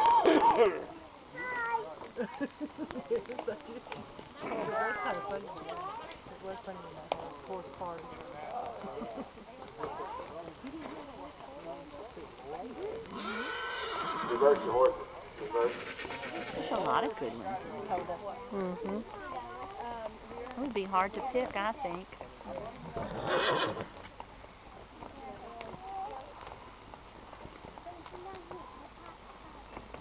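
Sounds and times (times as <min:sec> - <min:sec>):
distant voices: 0:00.0 - 0:30.0
horse hooves clopping on dirt: 0:00.0 - 0:30.0
horse whinnying: 0:13.1 - 0:17.2, 0:22.9 - 0:24.0.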